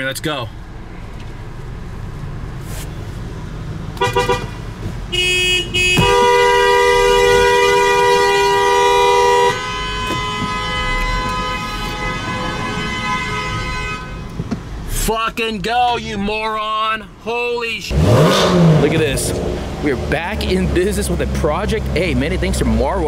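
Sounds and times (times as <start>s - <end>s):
low traffic rumble: 0.0s - 23.0s
car horn honking: 4.0s - 14.8s.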